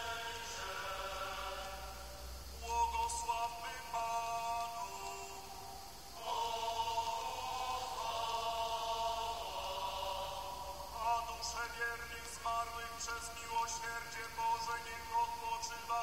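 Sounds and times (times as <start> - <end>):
chant-like religious singing: 0.0 - 16.0.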